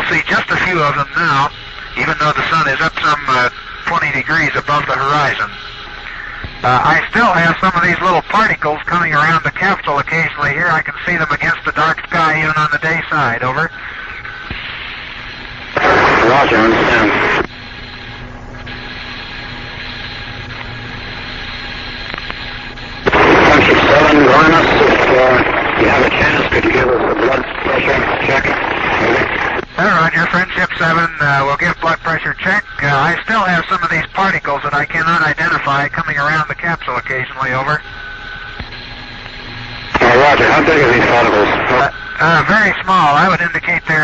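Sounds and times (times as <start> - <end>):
faint hum tones: 0.0 - 44.0
radio hiss: 0.0 - 44.0.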